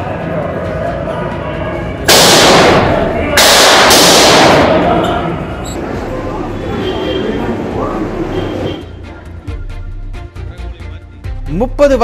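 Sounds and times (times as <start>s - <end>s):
loud distorted gunfire: 2.1s - 5.2s.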